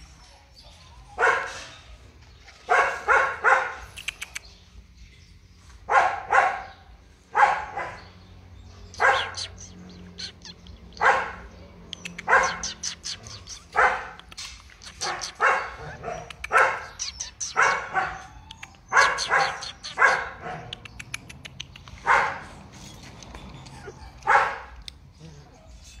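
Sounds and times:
puppies barking: 0.0s - 4.4s, 5.8s - 26.0s.

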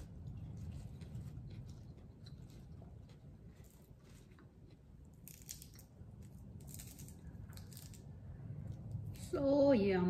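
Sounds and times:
lettuce crunching being chewed: 0.0s - 8.1s.

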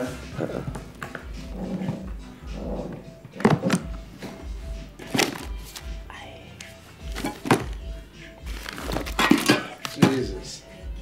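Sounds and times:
background music: 0.0s - 11.0s
briefcase knocks: 7.1s - 10.3s.

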